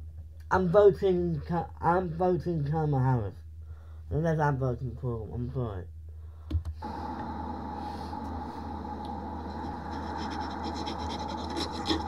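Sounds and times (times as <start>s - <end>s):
steady hum and hiss: 0.0s - 12.0s
scratchy rubbing: 9.4s - 12.0s.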